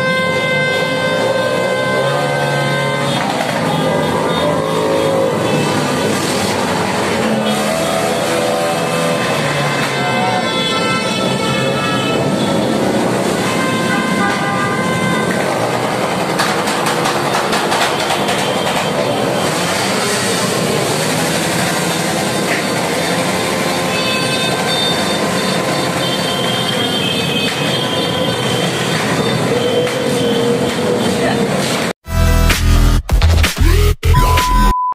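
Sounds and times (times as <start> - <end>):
horns tooting: 0.0 - 31.8
motor scooters riding past: 1.8 - 13.9.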